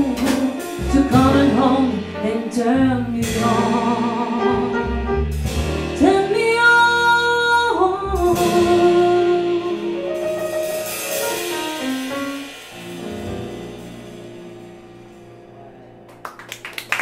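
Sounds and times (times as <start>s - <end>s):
woman singing: 0.0s - 4.8s, 6.0s - 10.3s
jazz band playing: 0.0s - 16.2s.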